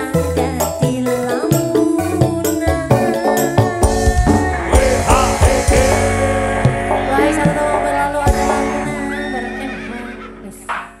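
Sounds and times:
live band closing notes: 2.5 - 11.0
gliding high notes: 2.6 - 10.6.

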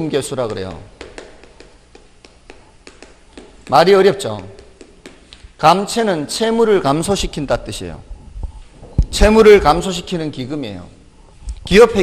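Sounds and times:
chalk tapping on chalkboard: 0.4 - 5.5.

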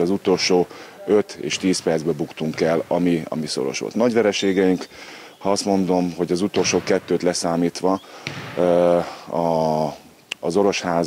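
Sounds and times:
man's hesitation sounds: 0.0 - 6.7.

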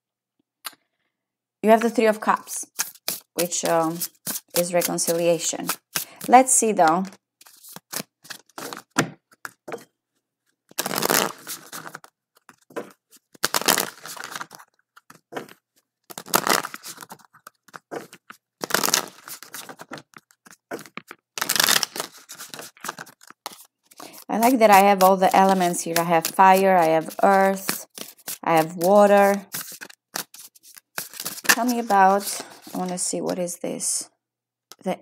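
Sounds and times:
cards shuffling: 1.8 - 9.7, 10.7 - 33.4.

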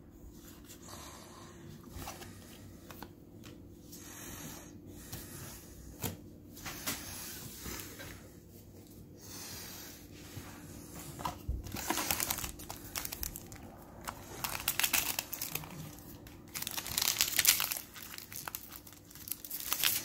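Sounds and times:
foil wrapper crinkling and tearing: 11.6 - 20.0.

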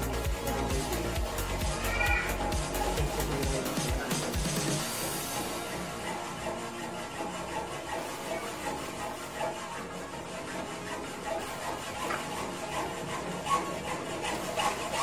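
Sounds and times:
sharp scrapes and clicks: 11.3 - 15.0.

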